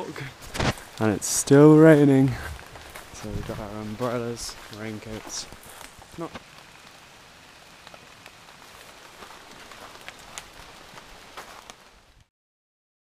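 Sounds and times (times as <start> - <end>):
steady rain hiss: 0.0 - 12.3
single raindrops: 2.5 - 12.3.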